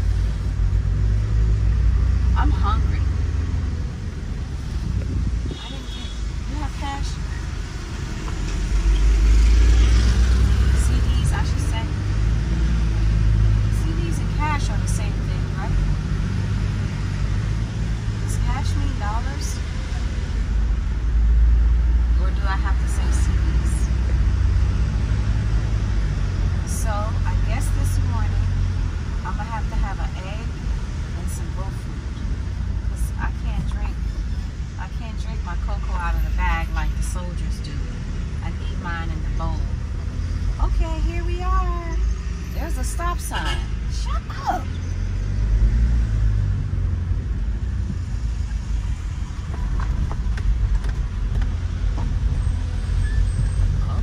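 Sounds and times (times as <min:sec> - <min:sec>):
vehicle engine and road rumble: 0:00.0 - 0:54.0.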